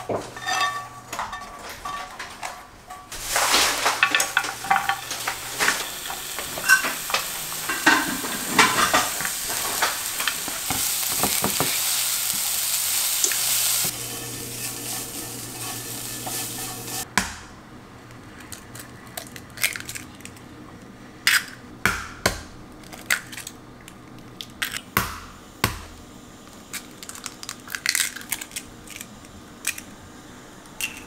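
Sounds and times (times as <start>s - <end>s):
spatula scraping a pan: 0.0s - 17.1s
onion sizzling in a frying pan: 3.1s - 17.1s.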